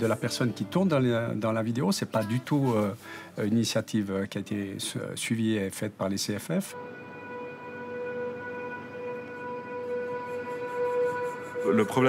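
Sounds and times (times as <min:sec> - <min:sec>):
faint hiss: 0:00.0 - 0:06.8
steady single-pitched drone: 0:06.7 - 0:12.0.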